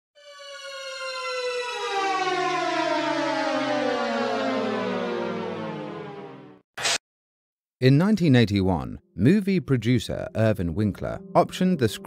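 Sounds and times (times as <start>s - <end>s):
tone gliding down in pitch: 0.2s - 6.6s.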